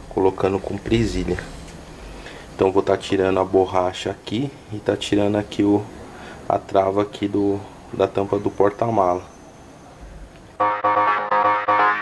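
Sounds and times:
synthesizer keyboard notes: 10.6s - 12.0s.

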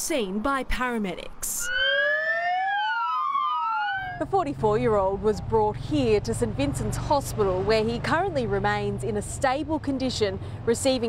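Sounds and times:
ambulance siren wailing: 1.6s - 4.3s.

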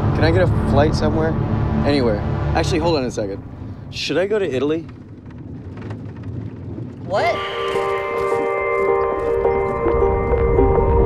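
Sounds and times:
road noise inside car: 0.0s - 7.0s.

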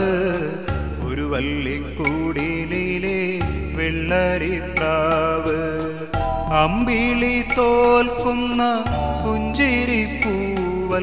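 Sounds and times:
man singing: 0.0s - 11.0s
percussion strikes: 4.8s - 11.0s
low drone: 6.1s - 10.3s.

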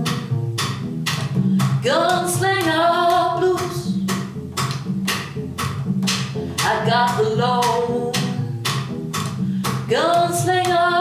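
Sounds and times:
plucked double bass: 0.0s - 11.0s.

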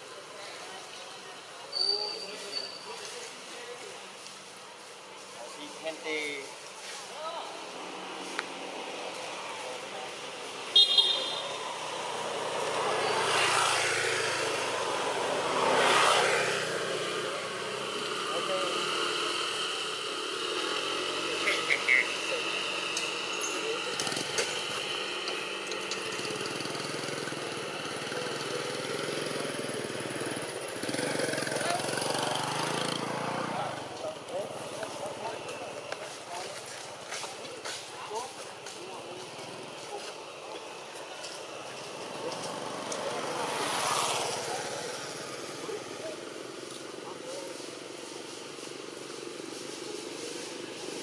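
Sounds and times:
people's voices: 0.0s - 51.0s
motor vehicle passing: 7.2s - 51.0s.

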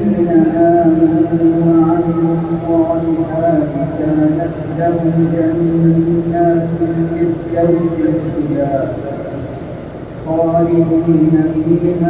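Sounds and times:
man chanting melodically: 0.0s - 9.6s, 10.2s - 12.0s.

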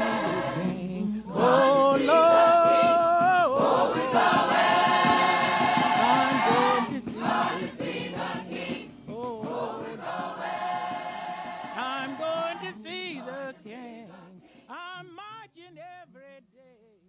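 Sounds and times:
gospel choir singing: 0.0s - 14.9s.

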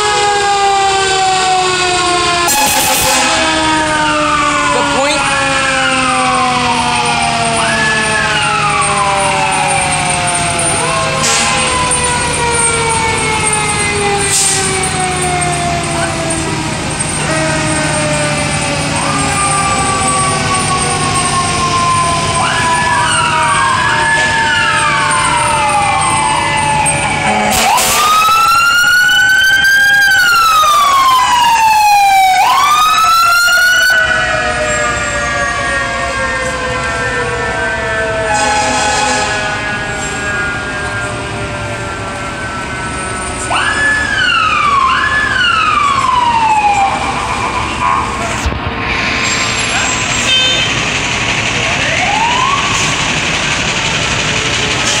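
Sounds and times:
fire engines passing: 0.0s - 55.0s
fire truck sirens wailing: 0.0s - 55.0s.

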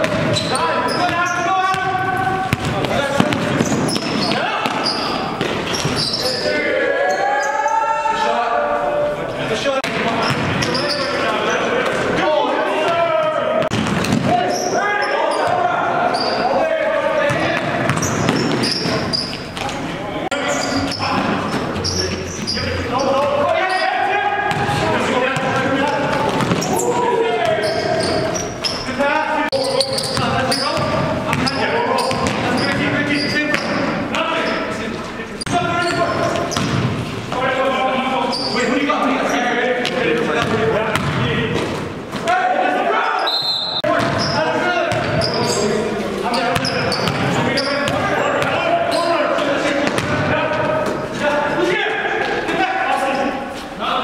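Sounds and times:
voices echoing in a hall: 0.0s - 54.0s
basketball bouncing on wooden floor: 2.5s - 6.0s, 40.4s - 41.2s, 49.8s - 50.3s.

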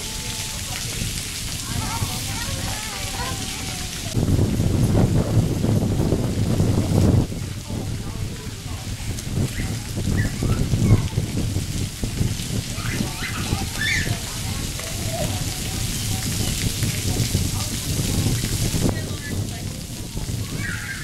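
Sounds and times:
children's voices: 0.0s - 4.2s, 7.4s - 21.0s
fountain jets spraying: 0.0s - 21.0s
water pattering on wet concrete: 0.0s - 21.0s.

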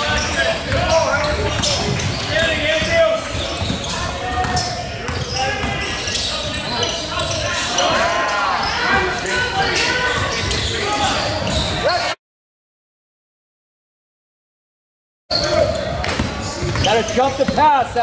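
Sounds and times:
sneaker squeaks: 0.0s - 12.2s, 15.3s - 17.8s
basketball bouncing: 0.6s - 5.8s, 15.5s - 17.7s.

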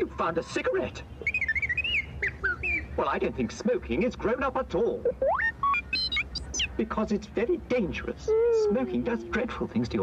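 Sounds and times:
robot electronic beeps and whistles: 5.0s - 6.8s.

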